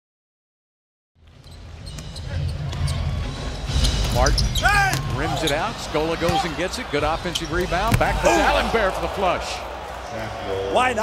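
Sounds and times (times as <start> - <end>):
crowd rumble in large hall: 1.2 - 11.0.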